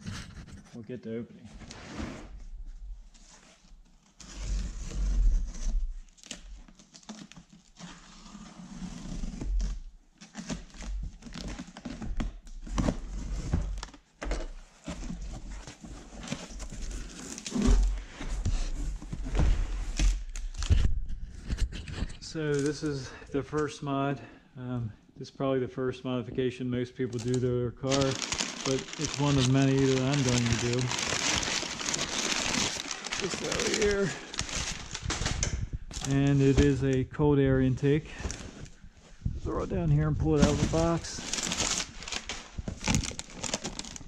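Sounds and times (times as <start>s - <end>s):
crumpled paper rustling: 27.1s - 37.0s, 37.8s - 38.8s, 39.5s - 44.0s.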